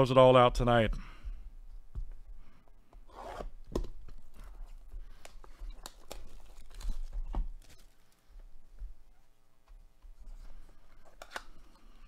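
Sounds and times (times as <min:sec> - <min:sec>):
plastic wrap tearing and crinkling: 0:05.4 - 0:08.0.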